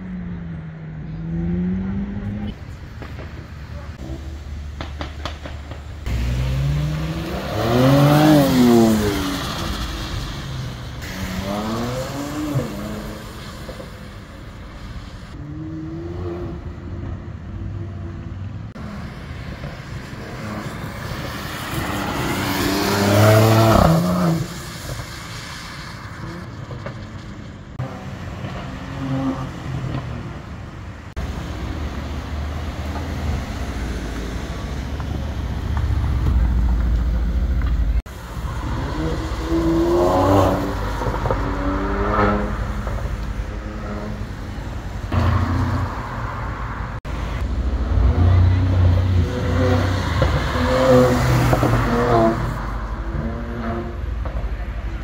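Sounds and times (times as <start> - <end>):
car accelerating hard: 6.0 - 9.9, 20.2 - 24.6, 47.6 - 54.0.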